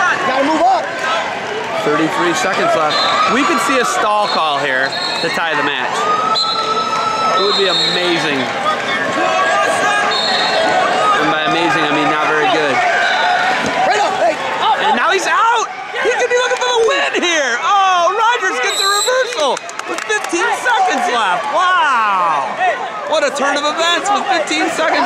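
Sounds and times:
crowd shouting: 0.0s - 25.0s.

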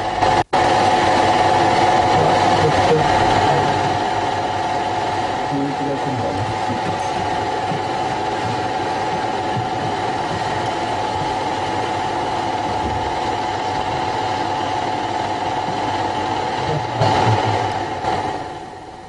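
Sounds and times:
machine hum with whirring hiss: 0.0s - 19.0s.

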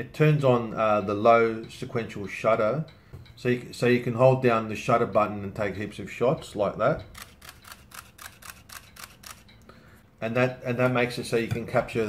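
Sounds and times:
camera shutter clicking rapidly: 7.1s - 9.5s.

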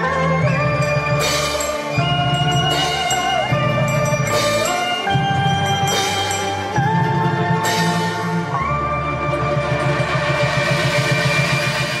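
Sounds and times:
pulsing bass: 0.0s - 12.0s.

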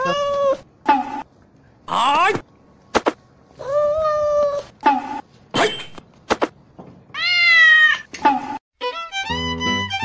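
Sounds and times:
cat meowing: 7.1s - 8.1s.

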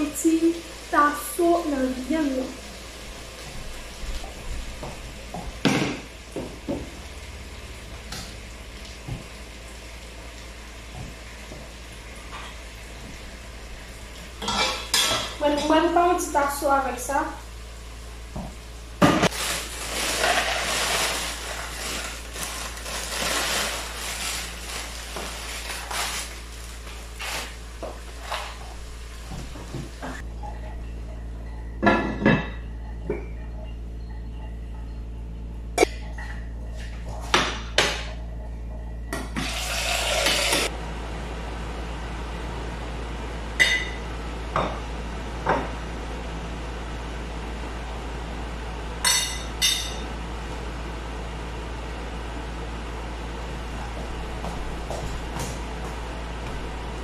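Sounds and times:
metal pots and utensils clattering: 14.4s - 15.6s.

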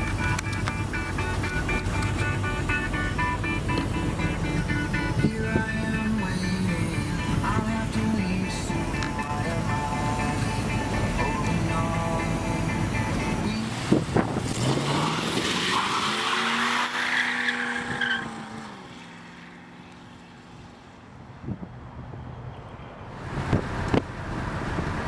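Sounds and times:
music: 0.0s - 13.7s
car engine revving: 0.0s - 20.9s
tires squealing: 12.7s - 20.9s.

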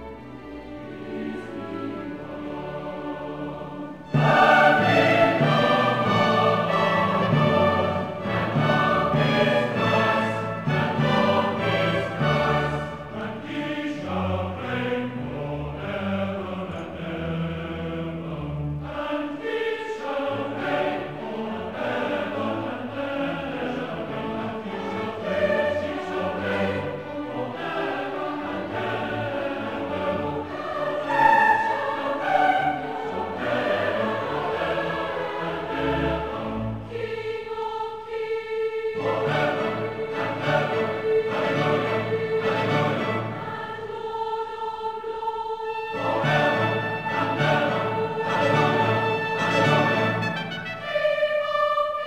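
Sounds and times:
mixed choir singing: 0.0s - 52.0s.

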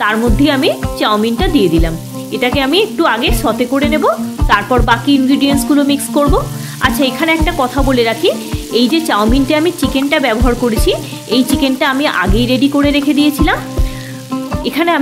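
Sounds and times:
background music: 0.0s - 15.0s
noodles sizzling in wok: 0.0s - 15.0s.

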